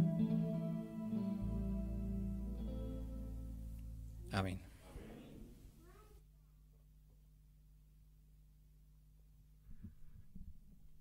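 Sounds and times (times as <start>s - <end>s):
keyboard and guitar notes: 0.0s - 4.3s
person speaking a word: 4.2s - 6.2s.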